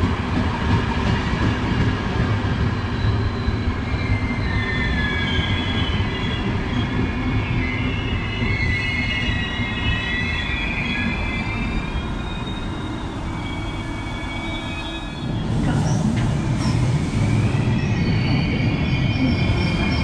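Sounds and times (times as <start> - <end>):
train coaches rumbling on rails: 0.0 - 20.0
high wavering wheel squeals: 2.7 - 20.0.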